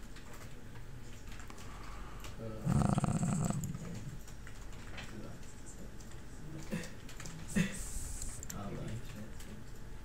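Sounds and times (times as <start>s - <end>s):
low rough vocal noise: 2.5s - 4.2s.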